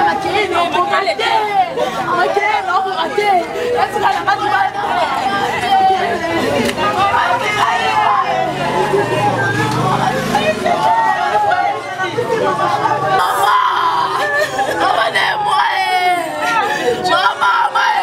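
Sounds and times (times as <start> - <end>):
street chatter: 0.0 - 18.0
women shouting and arguing: 0.0 - 18.0.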